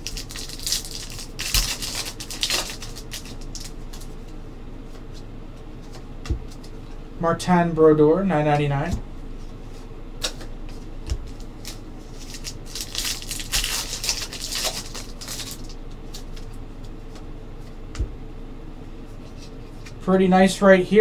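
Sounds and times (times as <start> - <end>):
wrapper crinkling: 0.0 - 4.1, 11.3 - 16.4.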